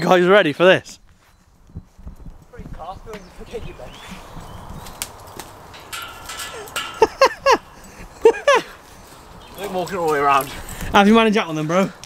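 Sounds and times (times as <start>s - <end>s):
rustling: 1.0s - 10.9s.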